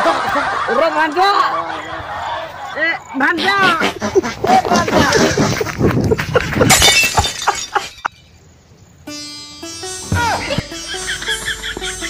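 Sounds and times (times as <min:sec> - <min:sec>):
glass shattering: 0:06.6 - 0:08.4.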